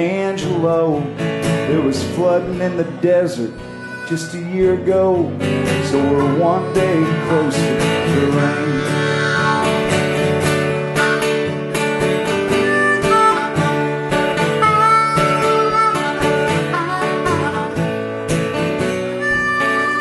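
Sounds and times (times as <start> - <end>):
person singing: 0.0 - 9.9
guitars strumming: 0.0 - 20.0
harmonica playing: 1.7 - 20.0.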